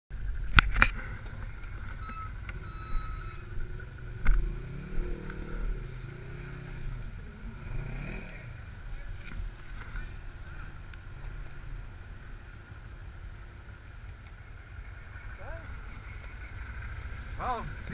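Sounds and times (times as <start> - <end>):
utv engine revving: 0.4 - 13.0, 13.9 - 17.9.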